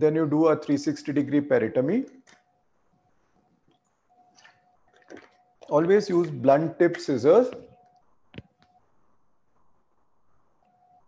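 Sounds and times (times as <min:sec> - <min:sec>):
man speaking: 0:00.0 - 0:02.2, 0:05.6 - 0:07.7.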